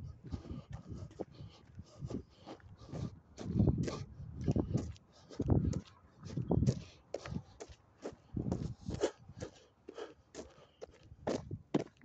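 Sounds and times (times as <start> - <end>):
footsteps on road: 0.0 - 12.0.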